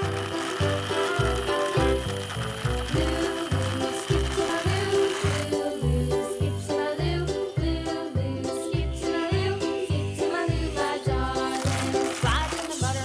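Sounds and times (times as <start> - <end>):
toy plane gears clicking and whirring: 0.0 - 6.4, 11.4 - 13.0
music with steady beat: 0.0 - 13.0.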